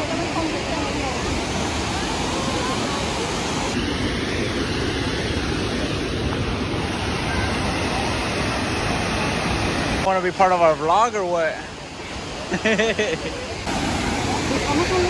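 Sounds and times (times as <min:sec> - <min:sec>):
waterfall roaring: 0:00.0 - 0:15.0.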